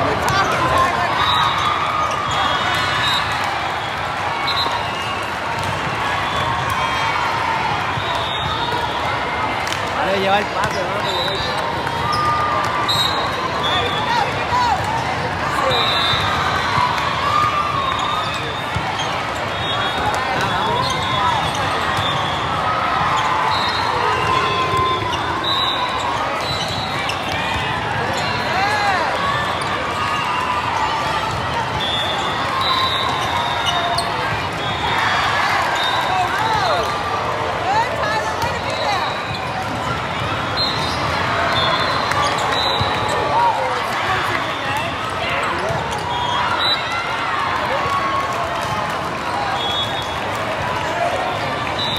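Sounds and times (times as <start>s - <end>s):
overlapping voices in sports hall: 0.0s - 51.9s.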